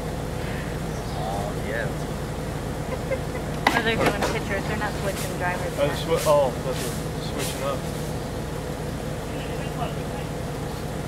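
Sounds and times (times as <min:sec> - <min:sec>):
vehicle engine idling: 0:00.0 - 0:11.0
faint distant voices: 0:02.9 - 0:08.2, 0:09.1 - 0:11.0
person talking close by: 0:03.0 - 0:07.8.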